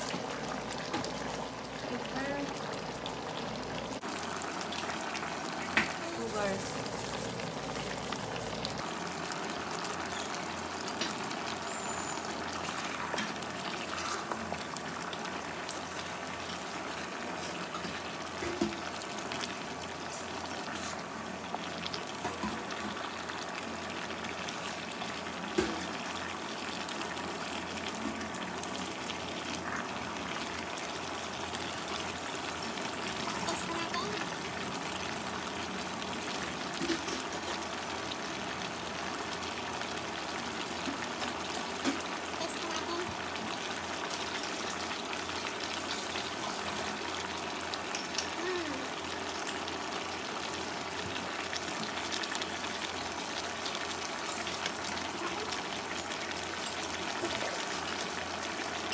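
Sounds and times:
broth simmering with a hiss: 0.0 - 58.9.

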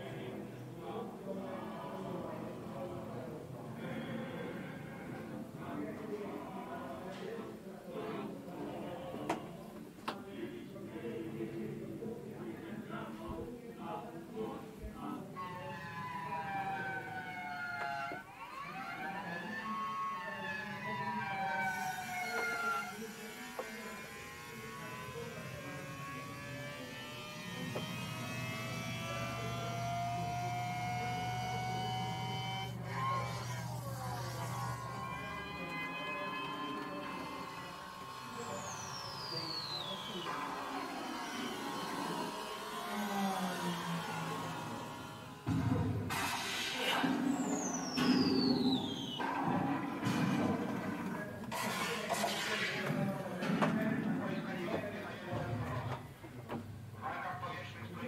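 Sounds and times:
siren-like wailing tones: 15.4 - 45.4
low hum: 24.5 - 35.7.

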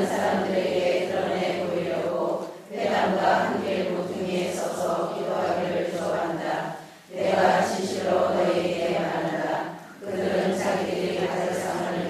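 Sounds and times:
congregation reading aloud in unison: 0.0 - 12.0.

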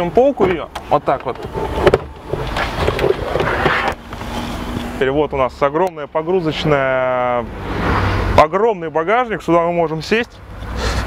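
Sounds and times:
fabric shelf rustling and scraping: 1.2 - 4.8.

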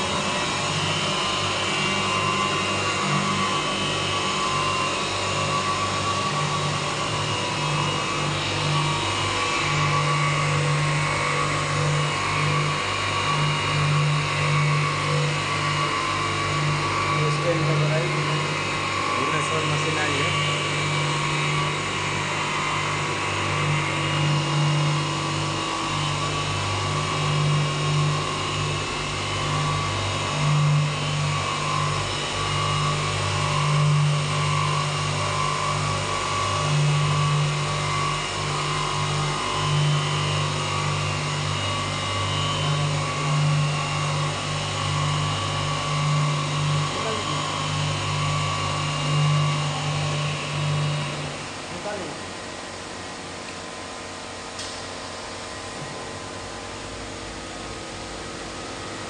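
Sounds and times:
electric motor hum: 0.0 - 59.0.

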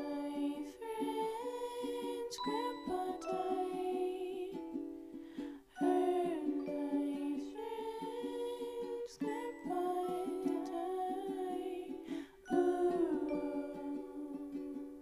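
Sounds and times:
person singing softly: 0.0 - 15.0
ukulele strumming: 0.0 - 15.0.

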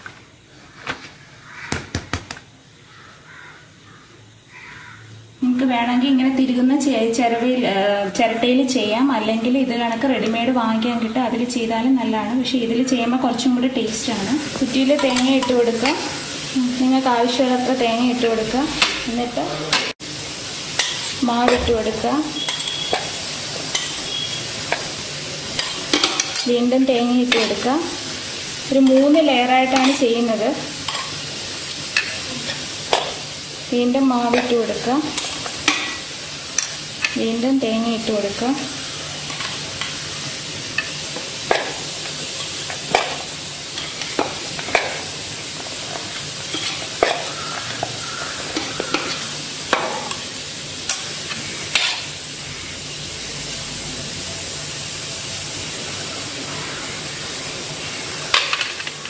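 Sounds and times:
steady hiss: 0.0 - 59.0
gritty rustle of stirring: 39.2 - 40.1, 40.8 - 50.2.

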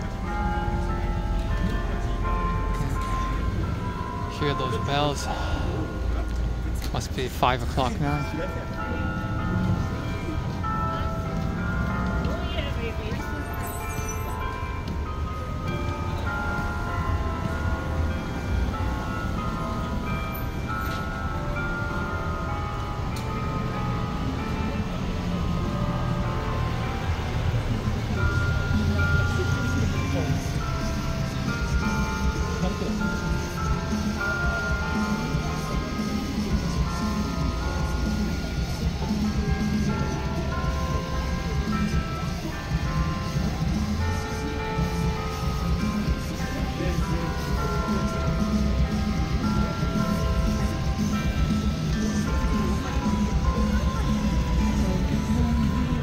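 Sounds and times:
church bells playing melody: 0.0 - 56.0
city traffic rumble: 0.0 - 56.0.

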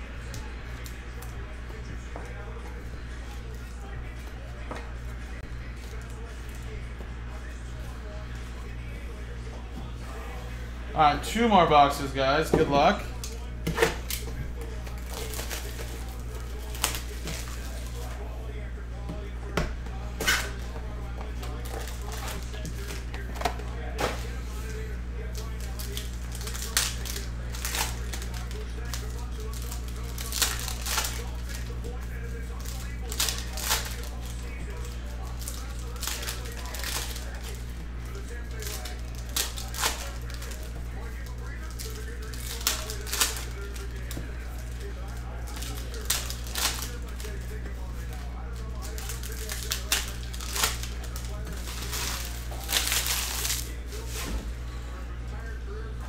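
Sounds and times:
steady low hum: 0.0 - 56.0
foil packs tearing and crinkling: 11.8 - 18.3, 21.3 - 54.3.

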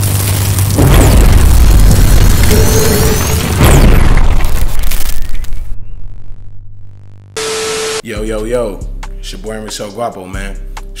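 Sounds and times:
deep cinematic boom: 0.7 - 4.8
music: 8.0 - 11.0.

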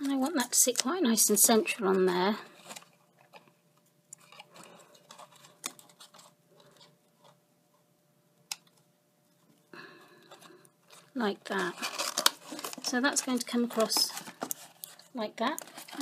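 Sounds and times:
cardstock rustling: 4.1 - 7.4, 10.3 - 16.0.

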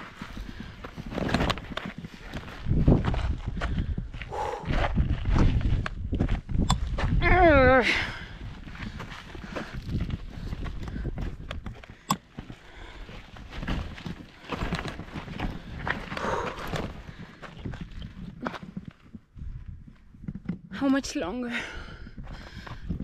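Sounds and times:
footsteps crunching on rocky trail: 0.0 - 20.7, 21.5 - 23.0.

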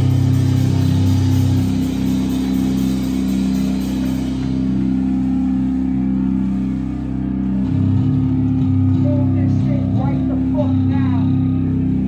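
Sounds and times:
distorted electric guitar and bass drone: 0.0 - 12.0.

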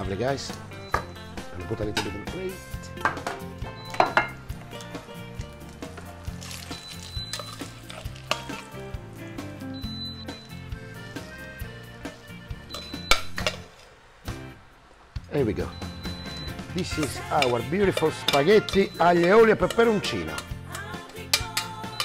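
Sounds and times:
background music: 0.0 - 22.0
utensil clinking on saucepan: 3.0 - 4.4, 16.9 - 22.0.

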